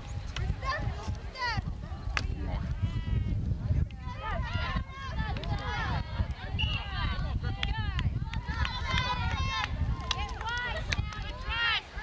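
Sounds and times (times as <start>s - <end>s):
voices shouting and calling out: 0.1s - 12.0s.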